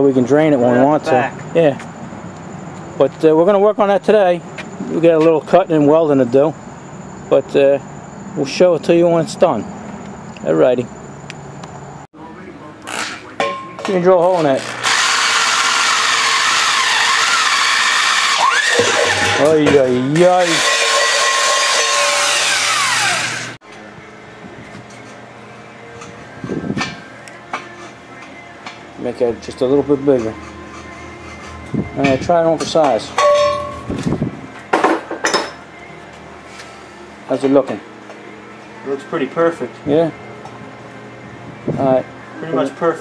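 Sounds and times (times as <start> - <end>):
electric drill grinding metal: 14.2 - 23.6
metal pipe clinking against milk can: 32.6 - 33.9.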